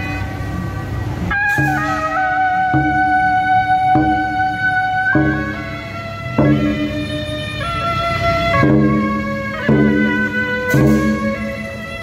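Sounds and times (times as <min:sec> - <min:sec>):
shawm playing a melody: 0:01.3 - 0:12.0.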